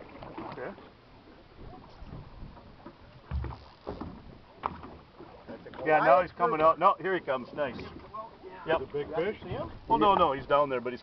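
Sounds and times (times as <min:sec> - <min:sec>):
small boat on water: 0:00.0 - 0:11.0
low thump: 0:03.2 - 0:04.9.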